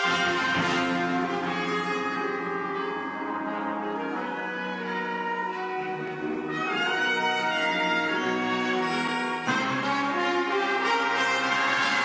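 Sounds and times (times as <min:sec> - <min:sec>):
orchestral brass chords: 0:00.0 - 0:12.0.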